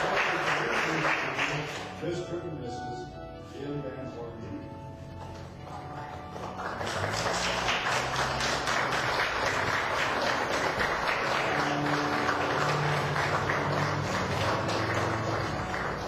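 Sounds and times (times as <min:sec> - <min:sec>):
crowd clapping: 0:00.0 - 0:02.0, 0:05.4 - 0:16.0
music with low sustained notes: 0:00.0 - 0:16.0.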